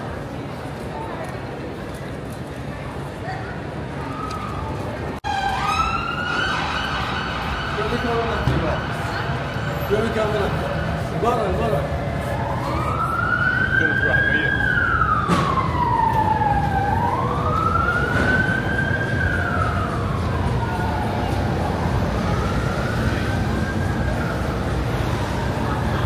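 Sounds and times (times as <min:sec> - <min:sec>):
street noise: 0:00.0 - 0:26.0
emergency siren wailing: 0:03.9 - 0:26.0.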